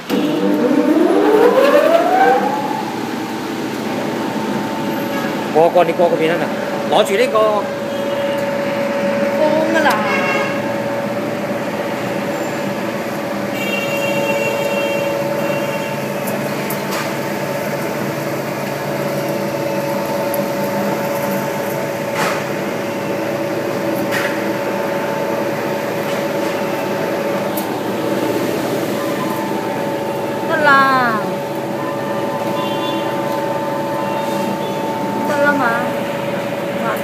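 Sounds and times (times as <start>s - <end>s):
motor hum: 0.0s - 37.0s.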